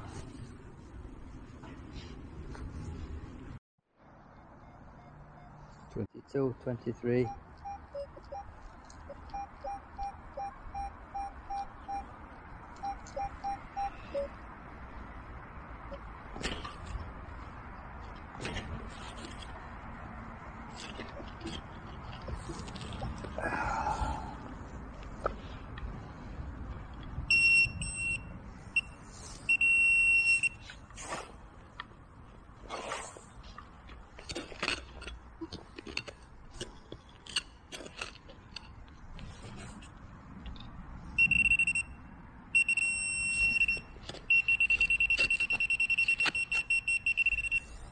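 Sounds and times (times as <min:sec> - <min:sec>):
metal detector beeps: 0:04.6 - 0:05.9, 0:07.2 - 0:12.1, 0:12.8 - 0:14.4, 0:27.3 - 0:30.8, 0:41.2 - 0:42.0, 0:42.6 - 0:47.9.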